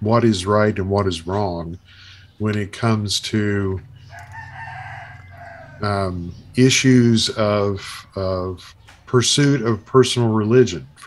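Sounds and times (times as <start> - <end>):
drawn-out bird call: 3.4 - 9.2.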